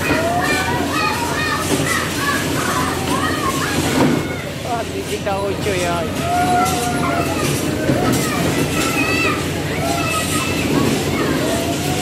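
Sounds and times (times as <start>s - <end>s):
children's voices: 0.0s - 12.0s
dodgem cars rolling rumble: 0.0s - 12.0s.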